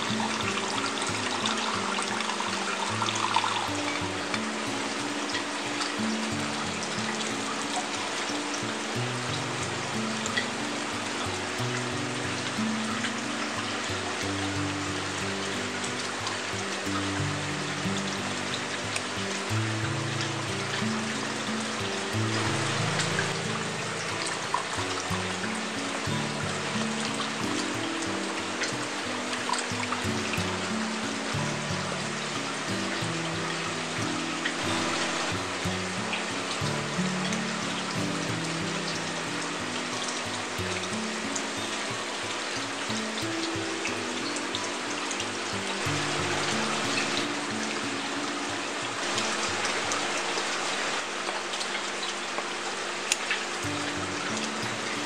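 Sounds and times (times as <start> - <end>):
slow low background music: 0.0 - 55.0
water trickling onto rocks: 0.0 - 55.0.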